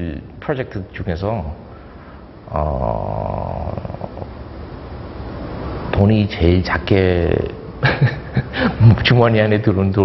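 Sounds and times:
man saying uhh: 2.5s - 4.4s.

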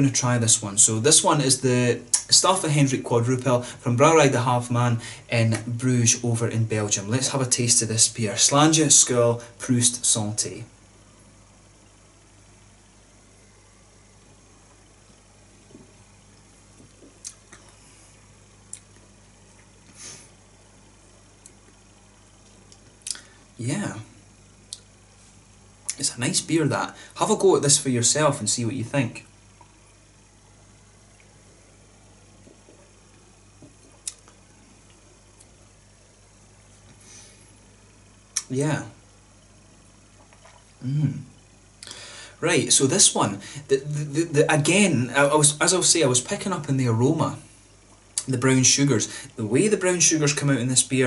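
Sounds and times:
low steady hum: 0.0s - 51.0s
soft breath-like hiss: 4.9s - 5.3s, 17.5s - 18.4s, 19.8s - 20.5s, 26.9s - 27.2s, 36.8s - 37.9s, 41.8s - 42.4s, 43.4s - 43.7s
soft slurps: 15.6s - 20.4s, 21.4s - 23.4s, 32.3s - 35.6s, 39.4s - 42.0s
lip smacks: 15.7s - 17.8s, 18.6s - 20.0s, 22.5s - 23.3s, 24.7s - 24.9s, 33.6s - 35.6s, 40.2s - 40.7s.

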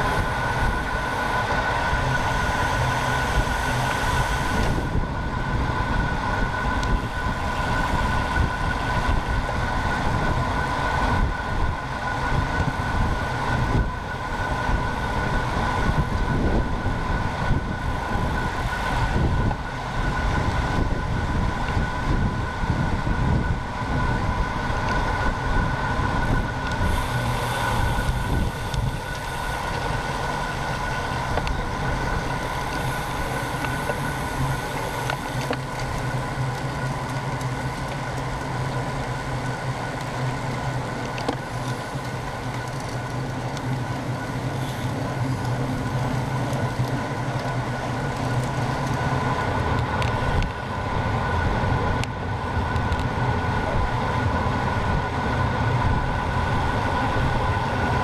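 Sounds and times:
steady high whine: 0.0s - 58.0s
tyre and road noise: 0.0s - 58.0s
wind buffeting microphone: 0.0s - 58.0s.

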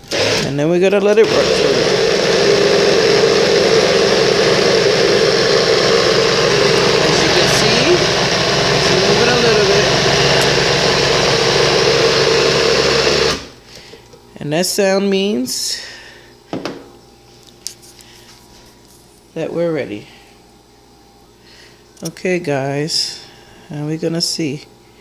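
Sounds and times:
blender motor running: 0.0s - 0.6s, 1.2s - 13.6s.

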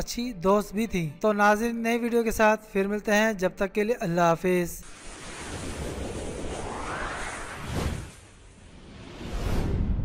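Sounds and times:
rising whoosh: 4.8s - 10.0s.

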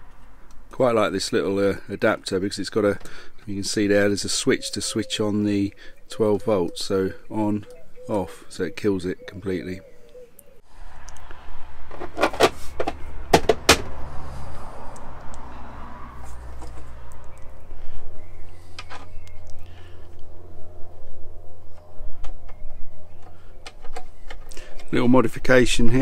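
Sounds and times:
low steady rumble: 19.2s - 23.1s.

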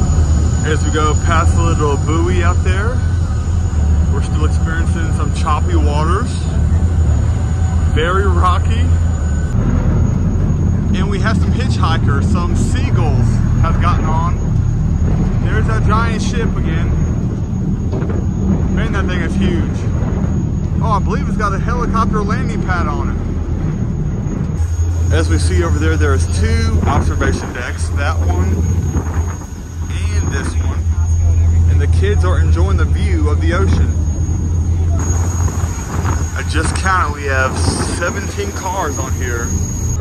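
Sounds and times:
ship engines rumbling: 0.0s - 40.0s
water: 0.0s - 40.0s
wind: 0.0s - 40.0s
man talking: 0.6s - 3.1s, 4.0s - 6.6s, 7.9s - 9.0s, 10.9s - 14.4s, 15.4s - 17.1s, 18.7s - 19.9s, 20.8s - 23.2s, 25.1s - 28.8s, 29.8s - 34.0s, 36.3s - 39.5s.

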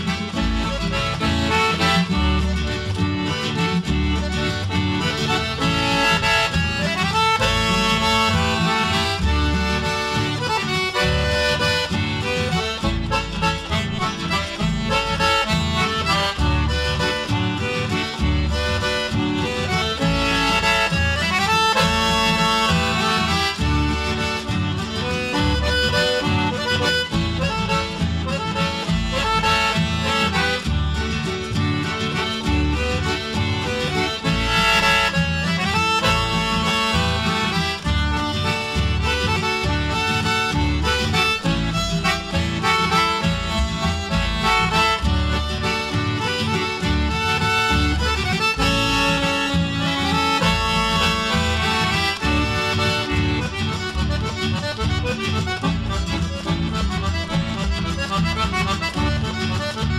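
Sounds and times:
accordion: 0.0s - 59.9s
guitar accompaniment: 0.0s - 59.9s.

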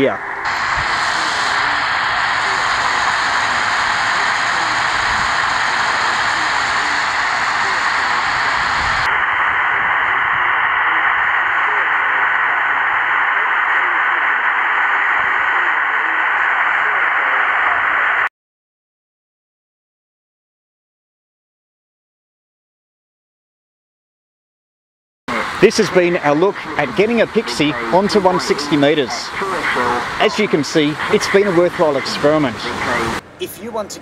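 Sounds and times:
radio hiss and static: 0.0s - 18.3s, 25.3s - 33.2s.

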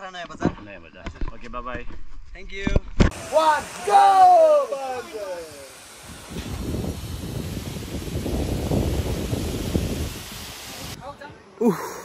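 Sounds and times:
wind buffeting microphone: 6.0s - 11.4s.

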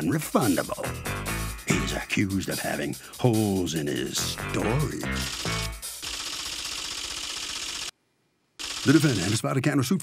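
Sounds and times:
rapid rattling: 2.4s - 7.9s, 8.6s - 9.4s.

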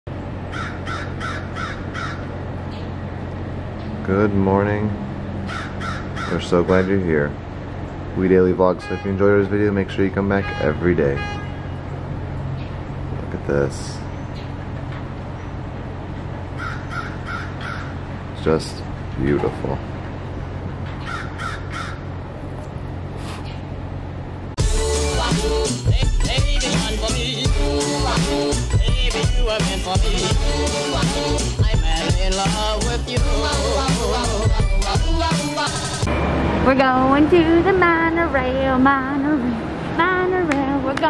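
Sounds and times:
steady low hum: 0.1s - 24.8s
bird calling: 0.4s - 3.1s, 5.4s - 7.1s, 16.5s - 18.1s, 20.9s - 23.8s
crow cawing: 0.5s - 2.4s, 5.4s - 6.9s, 16.6s - 18.0s, 21.0s - 22.2s.

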